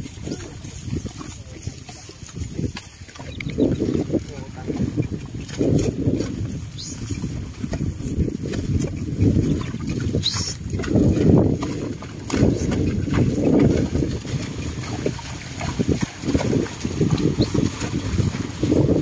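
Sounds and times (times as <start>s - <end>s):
sled dragging through mud: 0.0s - 19.0s.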